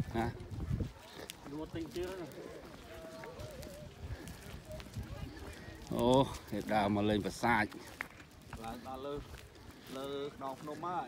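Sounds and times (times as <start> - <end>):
people talking: 0.0 - 7.8.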